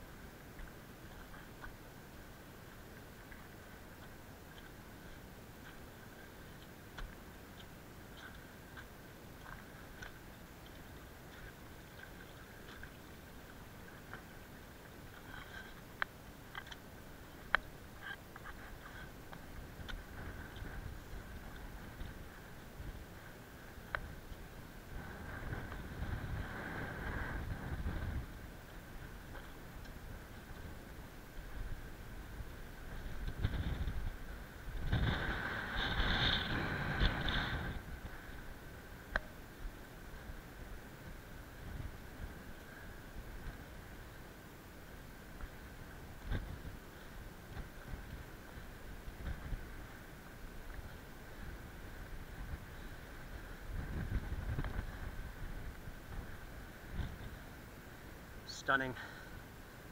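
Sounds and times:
wind buffeting microphone: 24.0s - 29.3s, 29.9s - 38.6s, 50.6s - 57.5s.

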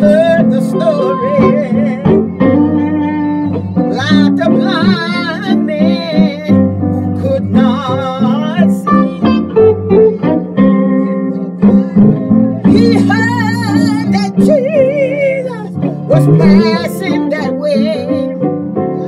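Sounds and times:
woman singing gospel song: 0.0s - 2.8s, 3.9s - 9.4s, 12.7s - 18.4s
instrumental accompaniment: 0.0s - 19.0s.

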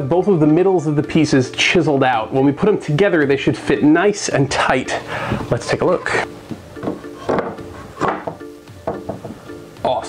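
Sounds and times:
background music: 0.0s - 10.0s
wooden boards knocking together: 6.8s - 9.4s.

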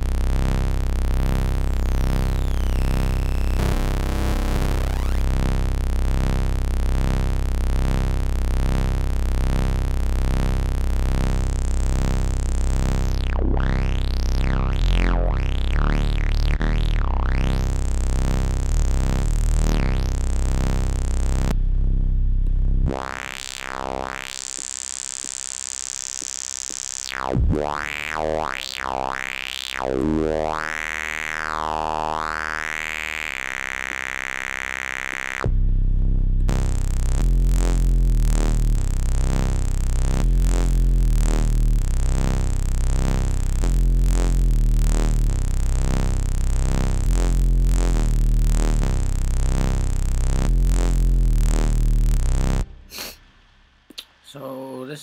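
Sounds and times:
buzzy synth bass line: 0.0s - 53.5s.

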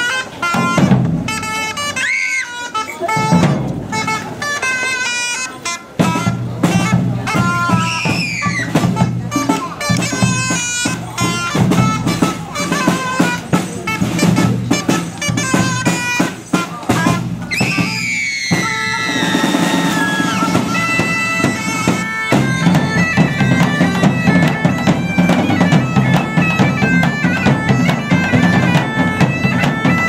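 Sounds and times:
drums: 0.0s - 30.0s
wind instrument solo melody: 0.0s - 30.0s.

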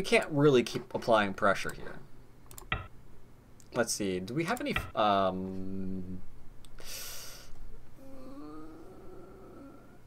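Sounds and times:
person humming hmm: 8.0s - 10.0s.

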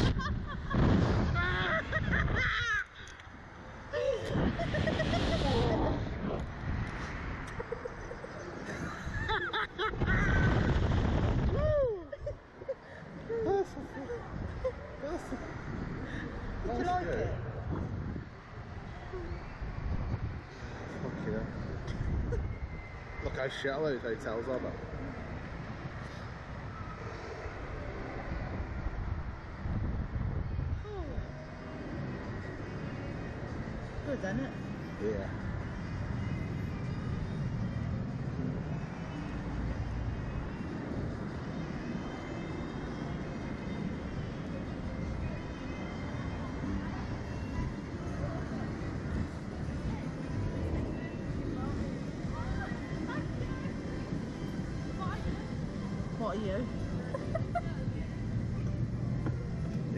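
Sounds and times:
riders laughing: 0.0s - 3.2s, 4.0s - 6.0s, 7.4s - 10.9s, 57.0s - 58.0s
wind rumble on microphone: 0.0s - 23.5s, 24.8s - 34.0s.

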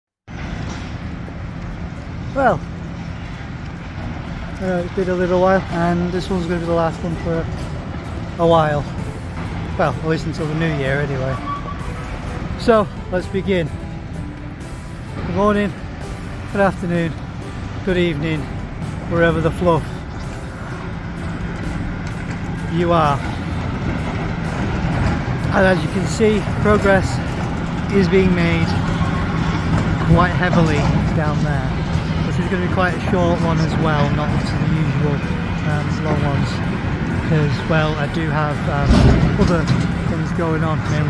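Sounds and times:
outdoor noise: 0.2s - 41.0s
diesel machinery engines droning: 0.3s - 41.0s
low urban rumble: 0.3s - 41.0s.

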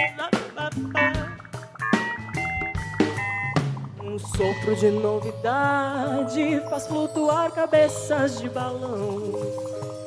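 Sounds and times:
sharp percussion hits: 0.0s - 5.8s
live band playing: 0.0s - 10.0s.

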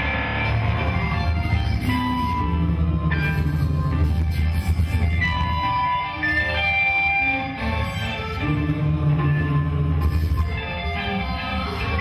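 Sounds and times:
loud rock music: 0.0s - 12.0s.

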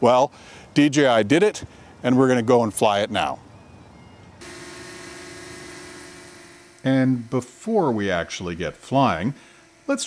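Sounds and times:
drone propellers whining: 3.9s - 10.0s.

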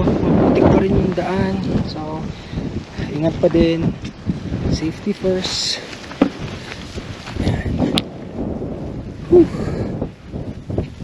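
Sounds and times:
footsteps on dirt trail: 0.0s - 9.2s
wind buffeting microphone: 0.0s - 11.0s.

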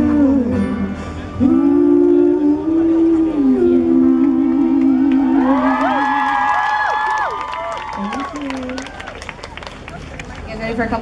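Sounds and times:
audience clapping: 4.7s - 10.6s
audience cheering and screaming: 5.0s - 10.0s.

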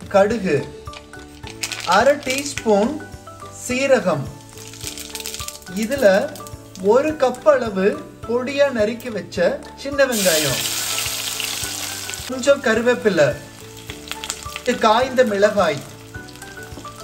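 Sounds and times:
shallots sizzling in hot oil: 1.0s - 7.7s, 10.0s - 17.0s.

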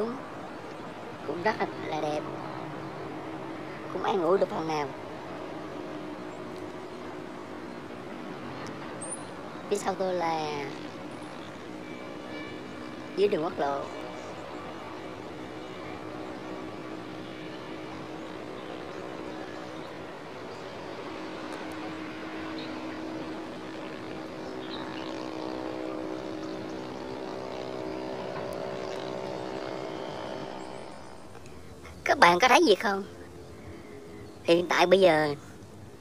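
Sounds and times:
distant engine droning: 0.0s - 36.0s.

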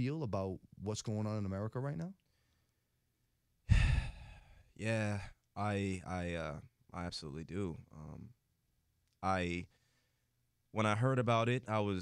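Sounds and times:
man sighing into microphone: 3.7s - 5.3s.

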